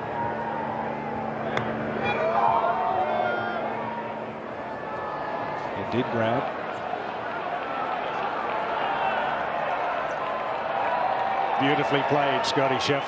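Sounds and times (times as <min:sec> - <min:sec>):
low hum: 0:00.0 - 0:05.8
crowd noise: 0:00.0 - 0:13.0.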